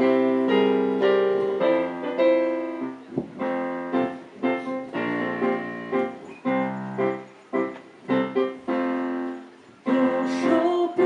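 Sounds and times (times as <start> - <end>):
electronic piano chords: 0.0 - 11.0.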